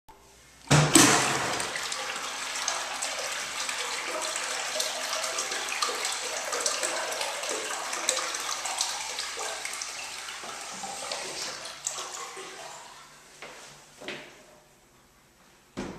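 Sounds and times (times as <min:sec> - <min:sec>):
urinal flushing: 0:00.7 - 0:14.3
water running with hiss: 0:01.0 - 0:13.1.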